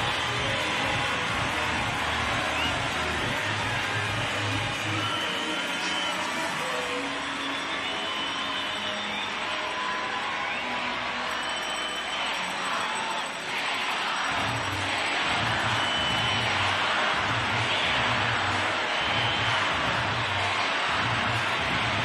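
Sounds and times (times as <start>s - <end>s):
stadium crowd cheering: 0.0s - 22.0s.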